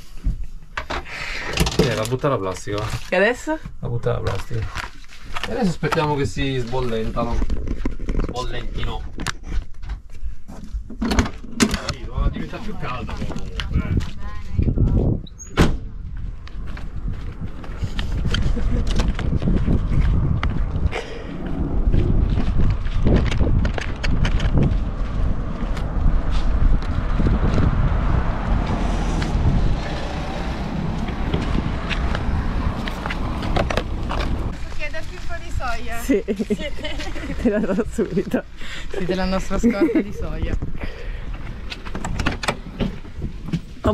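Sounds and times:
steady low rumble: 13.0 - 38.8.

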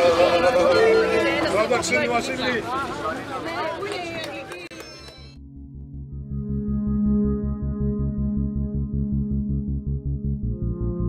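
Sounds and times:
people talking: 0.0 - 5.3.

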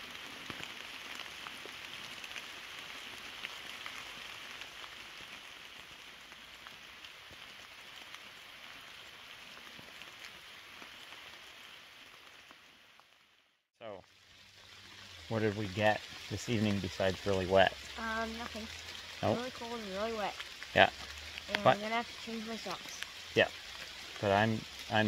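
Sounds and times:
rain falling on leaves: 0.0 - 25.0.

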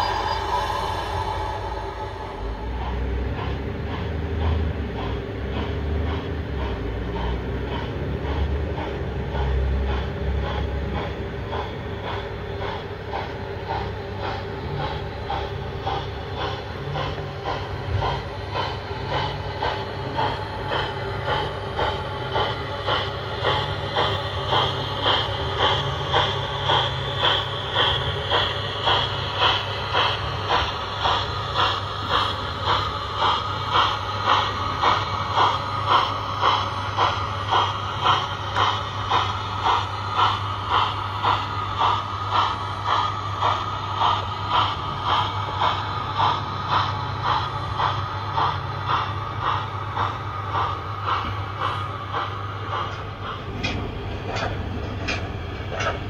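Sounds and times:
low hum of wheels on track: 0.0 - 56.0
model locomotive chuffing: 0.0 - 56.0.

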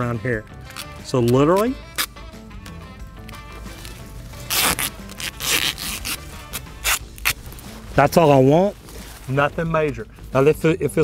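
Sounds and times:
tape ripping off roll: 0.7 - 2.2, 3.2 - 7.8.

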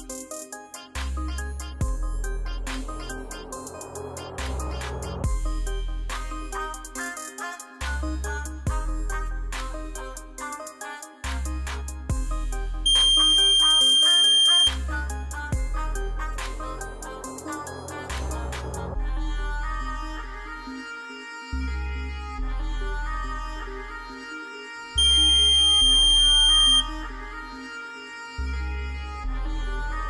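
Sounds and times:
background music: 0.0 - 30.0
high-pitched buzzer beep: 12.9 - 14.8, 25.0 - 26.8.

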